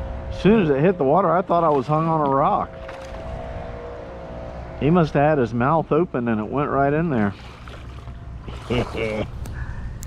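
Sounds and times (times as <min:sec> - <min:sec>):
electric trolling motor humming: 0:00.0 - 0:10.0
wind and water rumble: 0:00.0 - 0:10.0.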